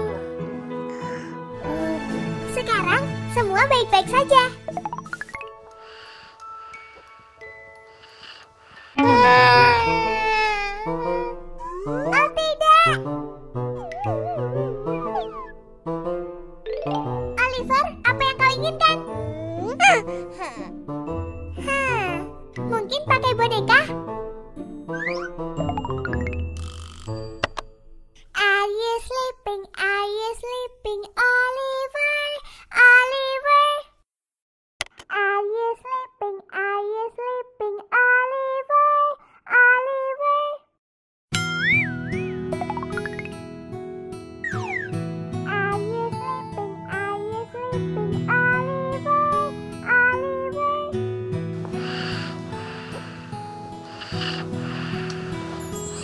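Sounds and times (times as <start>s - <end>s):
baby crying: 8.0s - 12.2s, 19.1s - 20.8s.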